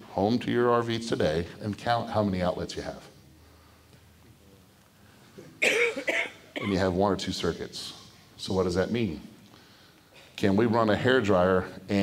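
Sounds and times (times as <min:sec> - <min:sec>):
man coughing: 0:05.4 - 0:07.0.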